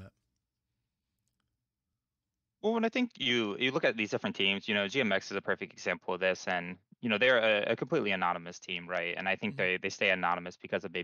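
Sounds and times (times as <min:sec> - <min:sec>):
man's voice: 0:02.6 - 0:11.0.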